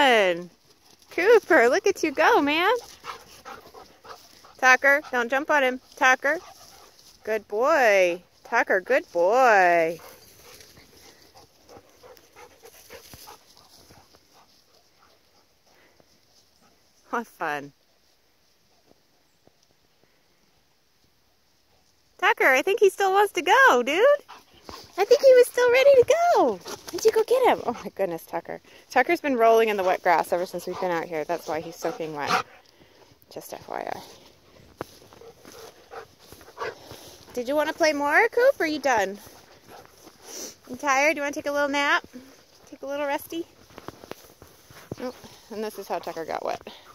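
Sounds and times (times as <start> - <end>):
dog panting: 0.8 - 7.3, 9.9 - 16.0, 24.2 - 28.0, 29.7 - 32.7, 34.0 - 37.8, 39.1 - 40.6.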